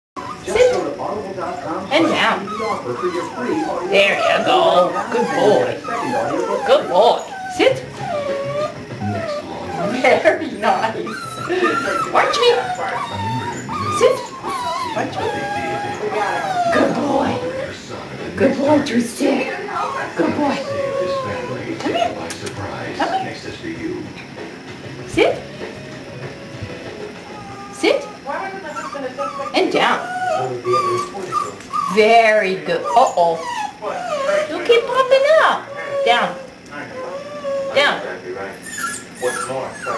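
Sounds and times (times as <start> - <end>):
puppy whining: 0.2 - 24.4, 25.1 - 39.9
puppy yips: 11.1 - 17.6, 38.6 - 39.9.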